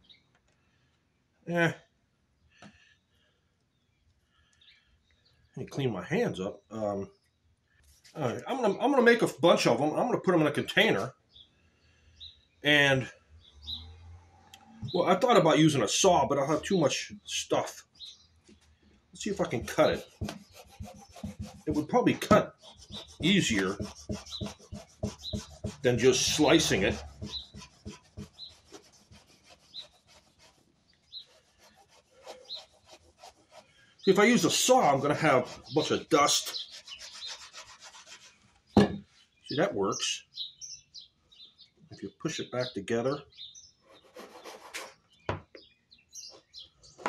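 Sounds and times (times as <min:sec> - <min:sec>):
knife sawing through fire log: 0:19.4 - 0:38.4.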